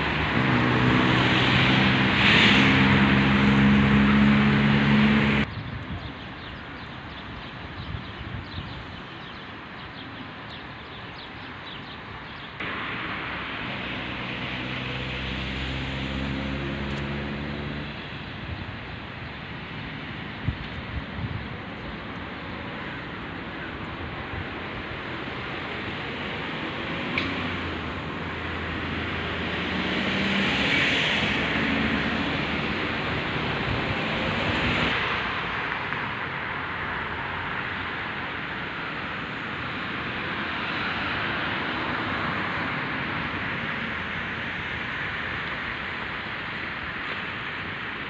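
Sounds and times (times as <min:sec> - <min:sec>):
road traffic hiss: 0:00.0 - 0:48.0
vehicles passing by: 0:00.0 - 0:48.0.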